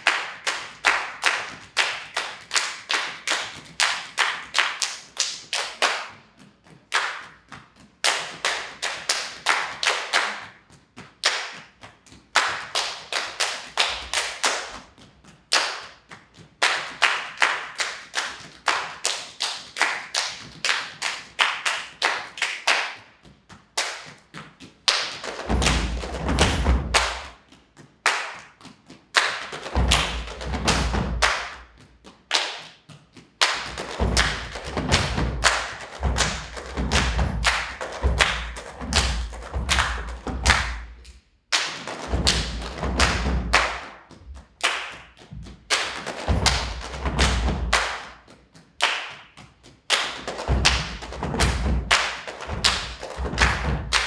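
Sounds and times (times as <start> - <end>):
hand claps and body slaps: 0.0 - 54.0
deep thumps: 25.5 - 27.2, 34.0 - 41.0, 42.1 - 44.4, 46.3 - 47.8, 50.5 - 54.0.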